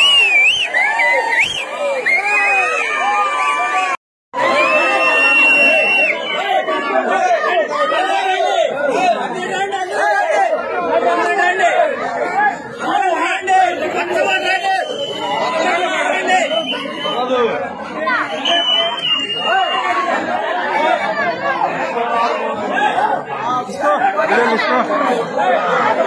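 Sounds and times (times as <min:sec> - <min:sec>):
crowd of men talking and shouting: 0:00.0 - 0:26.0.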